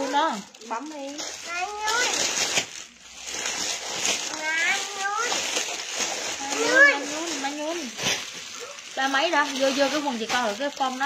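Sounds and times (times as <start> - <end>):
plastic bag crinkling: 0.0 - 11.0
people talking: 6.4 - 8.0, 9.0 - 11.0.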